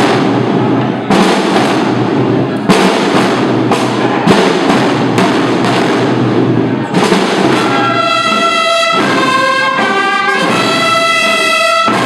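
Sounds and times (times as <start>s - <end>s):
drum band rolling: 0.0s - 12.0s.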